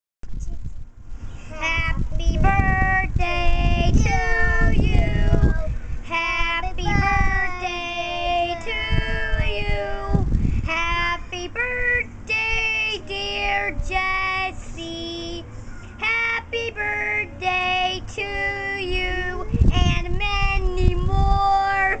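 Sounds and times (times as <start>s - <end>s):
child singing: 1.5s - 15.4s, 16.0s - 22.0s.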